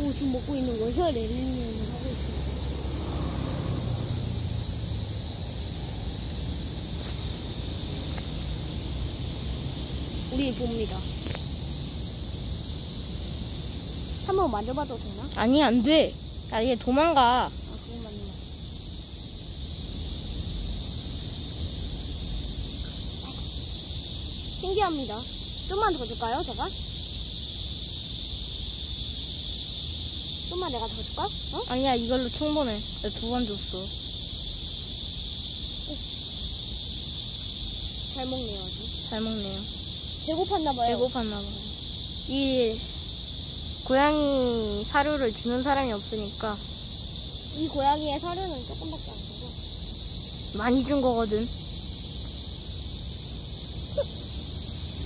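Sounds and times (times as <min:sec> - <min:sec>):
high-pitched insect chorus: 0:00.0 - 0:55.0.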